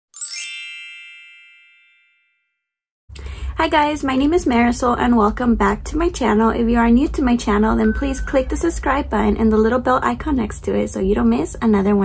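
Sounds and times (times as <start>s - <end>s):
bright chime sound effect: 0.1s - 2.6s, 7.7s - 8.6s.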